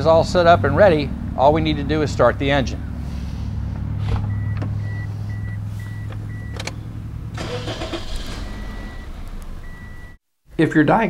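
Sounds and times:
car engine humming: 0:00.0 - 0:10.7
car warning chime beeping: 0:04.3 - 0:10.2.

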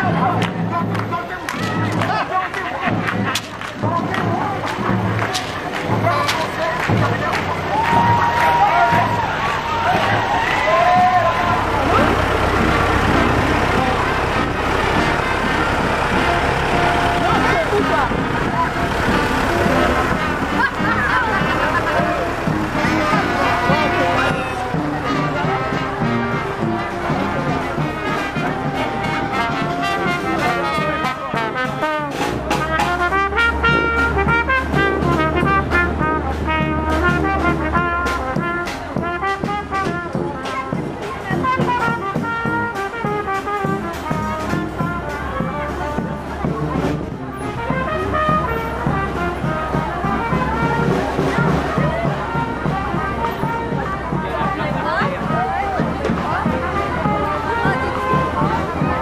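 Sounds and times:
brass band playing: 0:00.0 - 0:59.0
drums keeping beat: 0:00.0 - 0:59.0
people chattering: 0:00.0 - 0:59.0.

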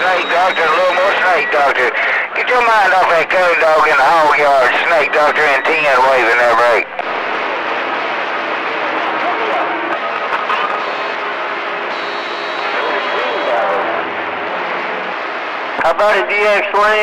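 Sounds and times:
faint overlapping radio voices: 0:00.0 - 0:17.0
radio static hiss: 0:00.0 - 0:17.0
thin high whistle: 0:11.9 - 0:13.4.

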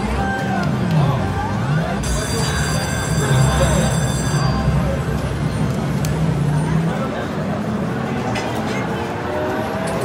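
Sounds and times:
casino background noise: 0:00.0 - 0:10.0
slot machine reels humming: 0:02.0 - 0:05.5.

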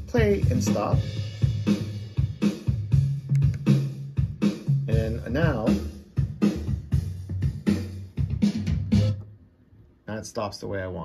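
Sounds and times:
backing track with drum beat: 0:00.0 - 0:09.2
bass line: 0:00.0 - 0:09.4.

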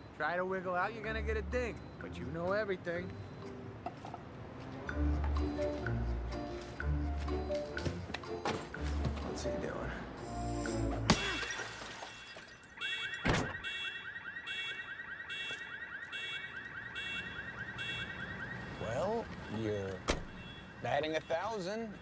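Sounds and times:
car alarm warbling and beeping: 0:12.2 - 0:22.0.

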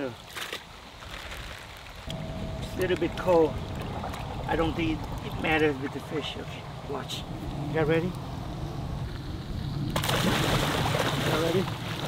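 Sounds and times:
low steady rumble: 0:02.0 - 0:12.0.

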